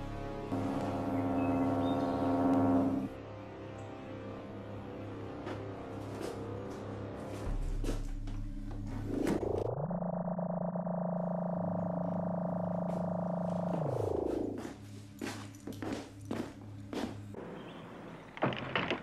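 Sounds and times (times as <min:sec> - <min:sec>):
low pulsing hum: 0:00.5 - 0:03.1, 0:07.5 - 0:15.1
rising electronic tone: 0:08.9 - 0:14.7.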